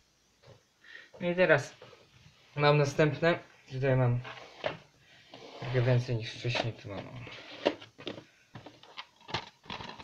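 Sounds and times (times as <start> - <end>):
plastic cases clicking: 6.5 - 10.0.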